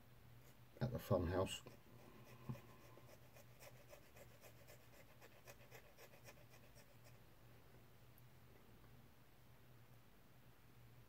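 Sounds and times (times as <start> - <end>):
file scratching on plastic: 1.6 - 7.2.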